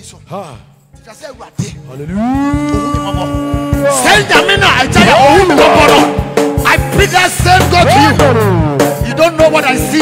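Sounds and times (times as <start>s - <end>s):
backing music: 0.0s - 10.0s.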